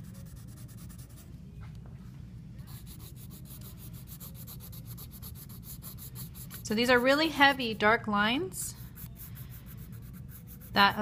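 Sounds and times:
pencil scratching on paper: 0:00.0 - 0:01.2, 0:02.7 - 0:07.7, 0:08.7 - 0:11.0.

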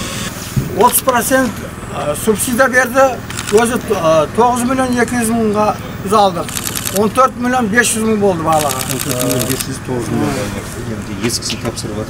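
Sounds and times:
man speaking: 0:00.8 - 0:12.0
fast even ticking clatter: 0:06.5 - 0:07.2, 0:08.5 - 0:09.7.

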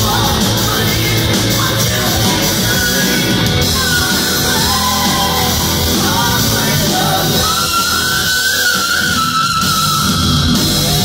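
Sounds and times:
person singing: 0:00.0 - 0:09.1
distorted electric guitar: 0:00.0 - 0:11.0
drums: 0:00.0 - 0:11.0.

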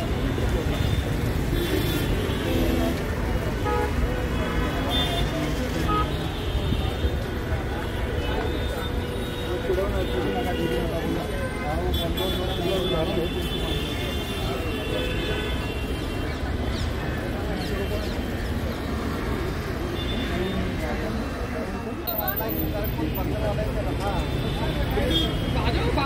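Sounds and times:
road traffic rumble: 0:00.0 - 0:26.0
voices: 0:00.0 - 0:26.0.

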